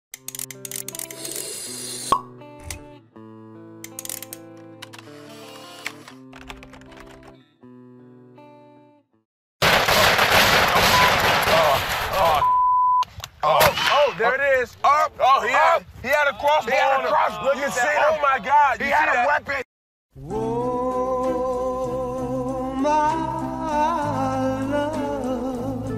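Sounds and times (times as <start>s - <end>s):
sharp clicks: 0.1s - 1.4s, 3.8s - 5.0s
short steady beep: 12.4s - 13.0s.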